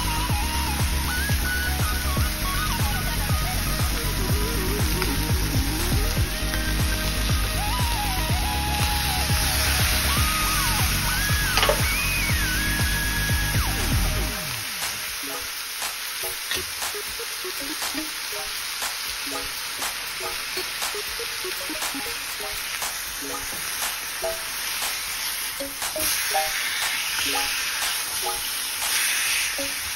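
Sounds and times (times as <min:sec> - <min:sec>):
background music: 0:00.0 - 0:15.6, 0:16.2 - 0:24.8, 0:25.5 - 0:29.0
steak sizzling in a frying pan: 0:00.1 - 0:29.9.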